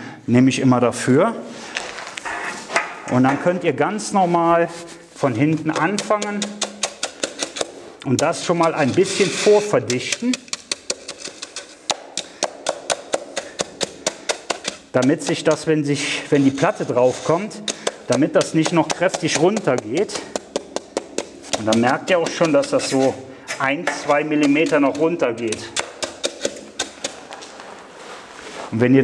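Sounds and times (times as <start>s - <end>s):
wooden board tapping on dry fill: 17.6s - 22.9s.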